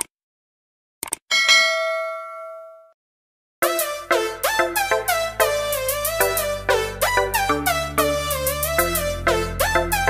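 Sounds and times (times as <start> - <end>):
bell ding: 1.3 - 3.0
music: 3.6 - 10.0.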